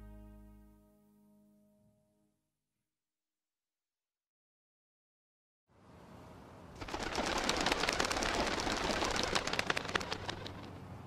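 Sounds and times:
pigeon wings flapping: 6.8 - 10.9.

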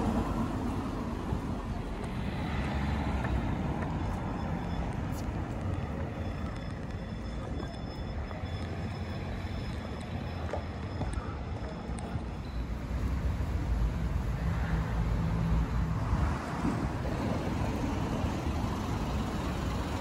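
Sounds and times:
passing vehicles rumbling: 0.0 - 20.0.

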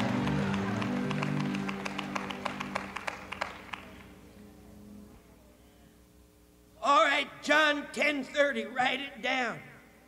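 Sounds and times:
audience clapping: 0.0 - 4.2.

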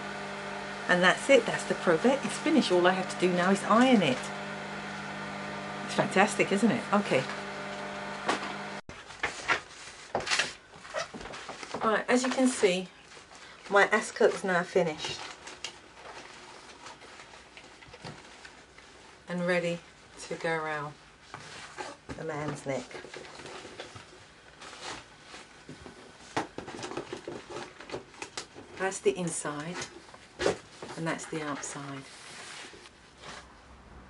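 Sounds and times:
handling knocks and rustles: 8.9 - 13.3, 21.2 - 28.9.

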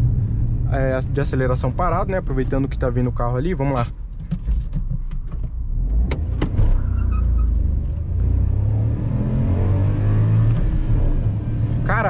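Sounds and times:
car engine accelerating: 5.5 - 12.0.

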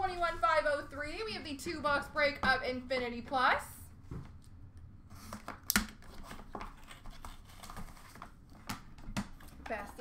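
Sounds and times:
cardboard packaging clicks and rustling: 5.2 - 9.8.

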